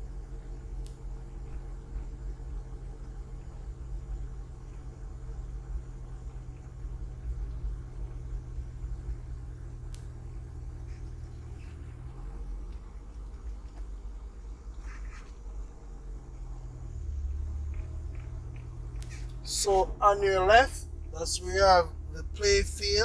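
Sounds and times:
car engine hum: 0.0s - 23.0s
road rumble: 0.0s - 23.0s.

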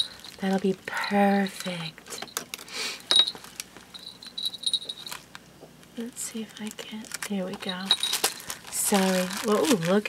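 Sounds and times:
cellophane crinkling: 0.0s - 0.8s, 1.4s - 10.0s
light high clinks: 3.1s - 5.2s.

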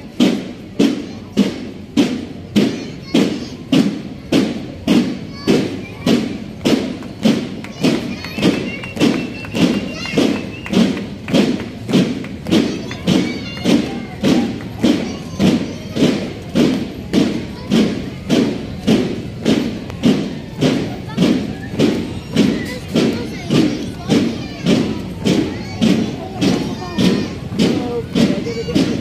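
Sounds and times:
boots stamping on cobblestones: 0.2s - 29.0s.

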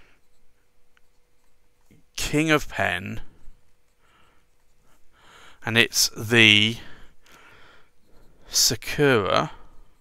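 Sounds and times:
pen nib scratching on paper: 0.0s - 2.0s.

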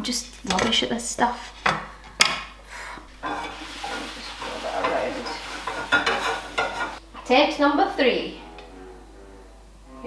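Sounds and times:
frying pan sizzling: 0.1s - 7.0s.

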